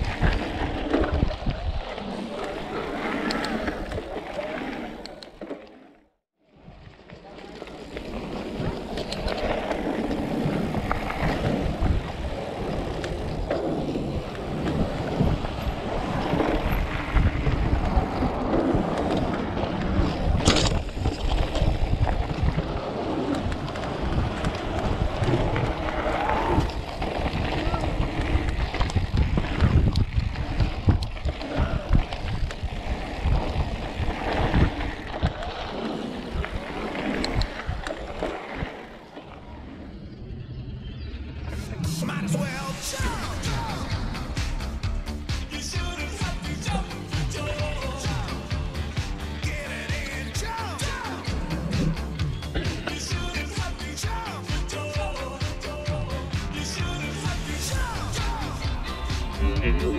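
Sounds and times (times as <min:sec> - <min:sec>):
tyre rumble over dirt trail: 0:00.0 - 0:05.7, 0:06.6 - 0:40.0
bike jolts and rattles: 0:00.0 - 0:05.8, 0:06.7 - 0:39.6, 0:41.6 - 0:59.9
wind buffeting: 0:08.2 - 0:45.0.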